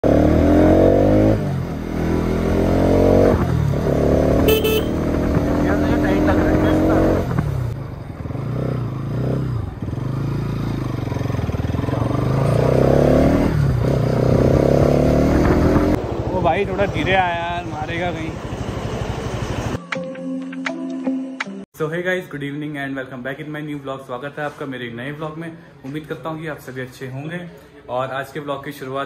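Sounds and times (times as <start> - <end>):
motorcycle engine accelerating: 0.0 - 19.8.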